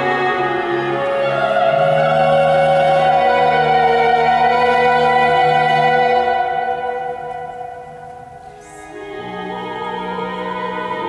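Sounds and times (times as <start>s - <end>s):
held chord from app instruments: 0.0s - 11.0s.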